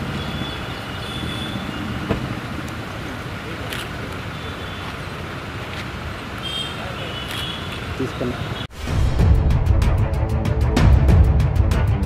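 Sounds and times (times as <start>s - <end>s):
low rumble of road traffic: 0.0s - 8.9s.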